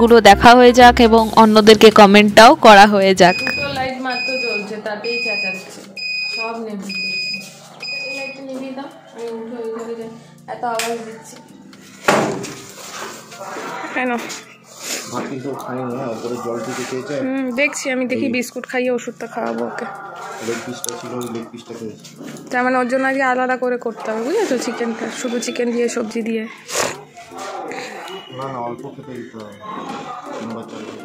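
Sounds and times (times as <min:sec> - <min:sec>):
electronic alarm beeping: 0:03.2 - 0:08.6
dog whining: 0:19.7 - 0:21.6, 0:24.0 - 0:28.4.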